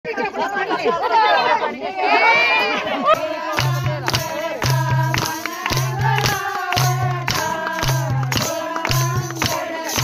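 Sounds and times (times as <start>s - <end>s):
women talking and calling out: 0.1s - 3.1s.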